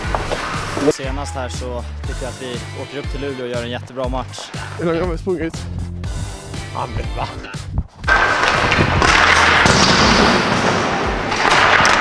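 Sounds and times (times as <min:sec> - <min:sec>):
background music: 0:00.0 - 0:12.0
person speaking: 0:00.8 - 0:05.7, 0:06.5 - 0:07.8.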